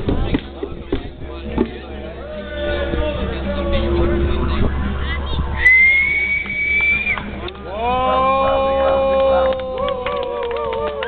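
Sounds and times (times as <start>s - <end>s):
steady low rumble: 0.0s - 11.0s
long whistled note: 5.6s - 7.3s.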